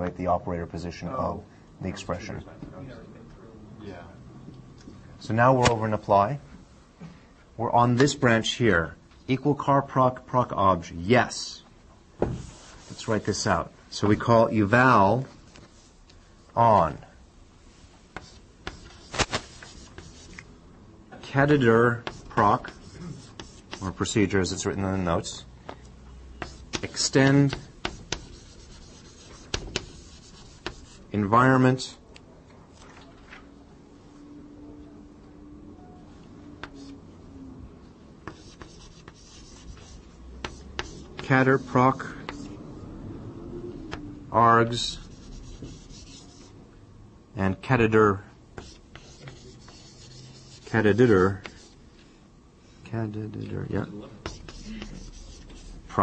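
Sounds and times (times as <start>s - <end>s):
writing on a board: 18.1s - 20.5s, 21.5s - 24.2s, 26.4s - 31.1s, 36.6s - 37.0s, 38.2s - 42.6s, 44.7s - 46.6s, 48.6s - 51.8s, 54.2s - 55.9s.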